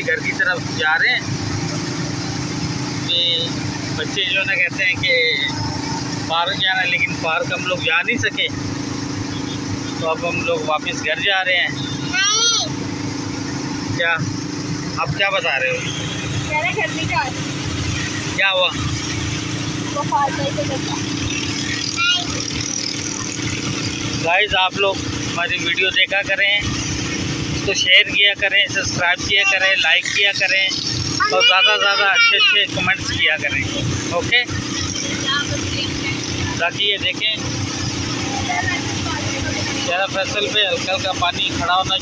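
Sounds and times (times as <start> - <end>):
auto-rickshaw engine running: 0.0 - 42.0
tyres on wet road: 0.0 - 42.0.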